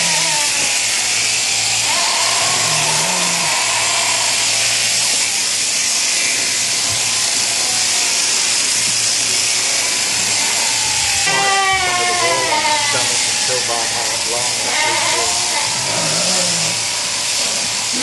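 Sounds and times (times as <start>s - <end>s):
electric shears buzzing: 0.0s - 18.0s.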